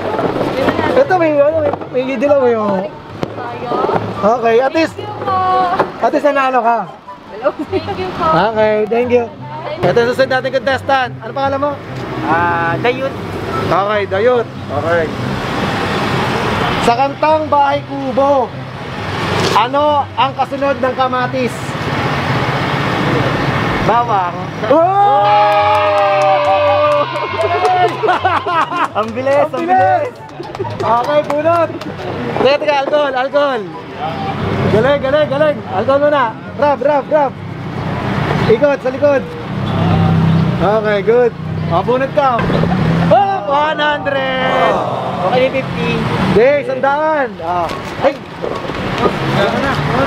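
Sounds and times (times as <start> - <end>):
street traffic rush: 0.0 - 50.0.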